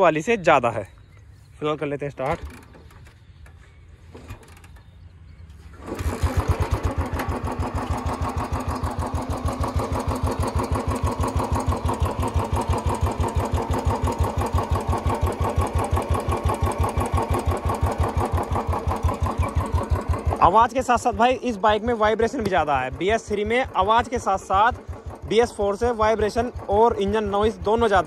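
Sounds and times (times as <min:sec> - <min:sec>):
motorcycle engine idling: 0:02.1 - 0:28.0.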